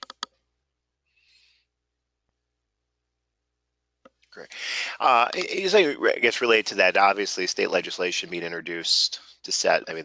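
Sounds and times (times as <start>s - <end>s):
sharp clicks: 0.0s - 0.4s.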